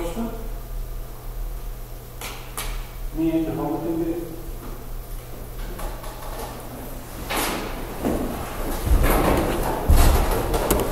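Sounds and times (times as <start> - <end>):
rustling and knocking of objects: 7.2 - 10.9
low thumps: 8.7 - 10.9.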